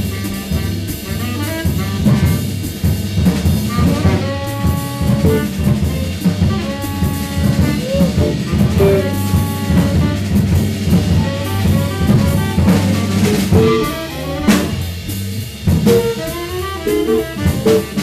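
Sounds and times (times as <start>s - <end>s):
guitar playing jazz line: 0.0s - 18.0s
snare drum with rimshots: 0.0s - 18.0s.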